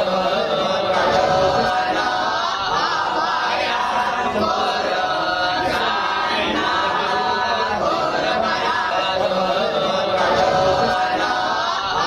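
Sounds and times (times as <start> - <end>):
voices chanting together: 0.0 - 12.0.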